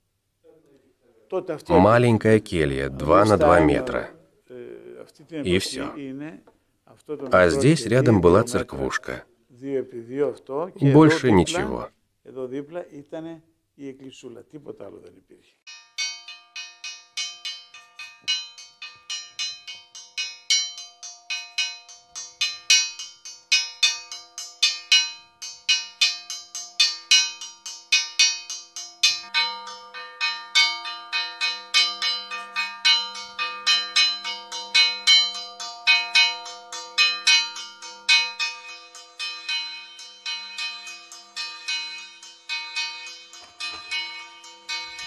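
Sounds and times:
church bells ringing: 16.0s - 45.0s
deeper bell: 16.0s - 45.0s.

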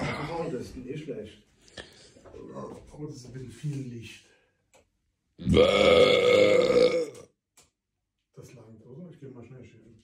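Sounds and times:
man belching: 5.4s - 7.3s.

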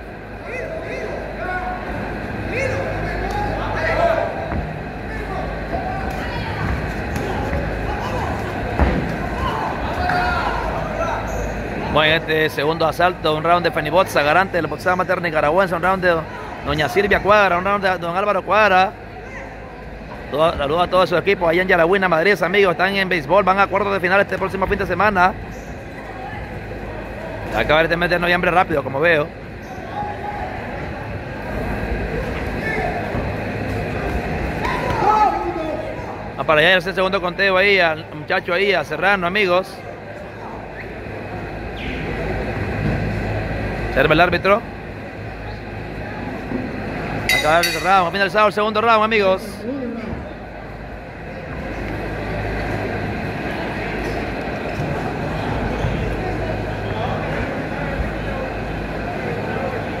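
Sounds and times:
murmur of voices in a hall: 0.0s - 60.0s.

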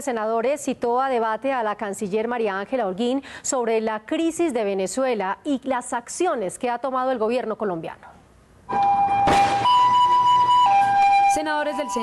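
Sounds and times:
two-tone emergency siren: 8.7s - 12.0s.

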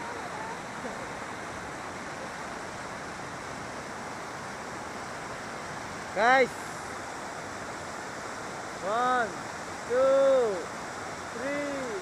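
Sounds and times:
river rushing: 0.0s - 12.0s.

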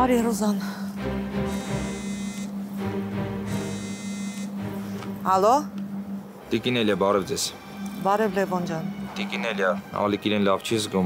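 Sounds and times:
background music with drone: 0.0s - 11.0s
mobile phone ringing: 1.5s - 2.7s, 3.4s - 4.6s.

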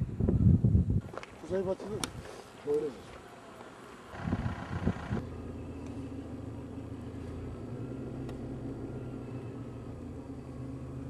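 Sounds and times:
engine idling: 3.4s - 11.0s.

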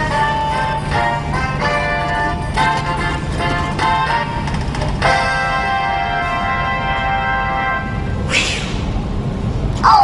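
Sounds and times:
short whoosh: 8.2s - 9.1s.

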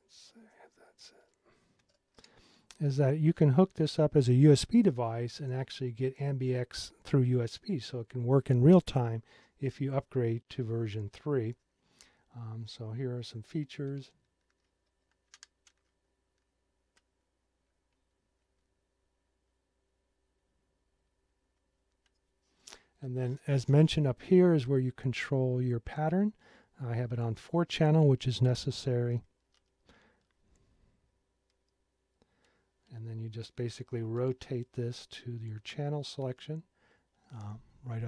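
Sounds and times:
faint clicks: 13.8s - 17.1s.

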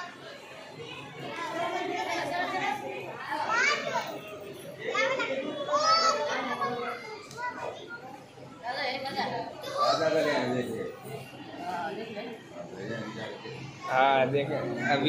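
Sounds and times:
children calling and talking: 0.0s - 15.0s
people chattering: 0.0s - 15.0s.

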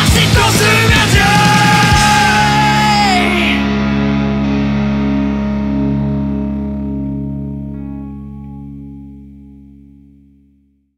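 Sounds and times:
distorted electric guitar chord: 0.0s - 10.8s.

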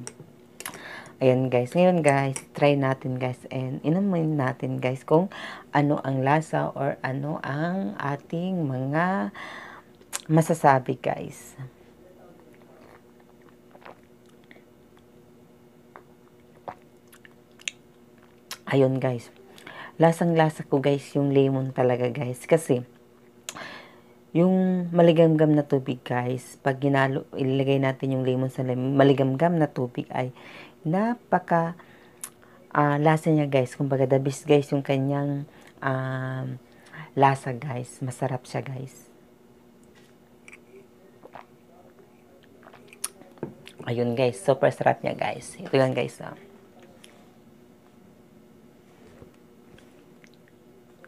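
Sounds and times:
faint steady hum: 0.0s - 51.0s
person sipping and swallowing: 12.5s - 15.1s, 15.9s - 17.8s, 40.4s - 41.6s, 42.4s - 43.8s, 49.7s - 50.6s.

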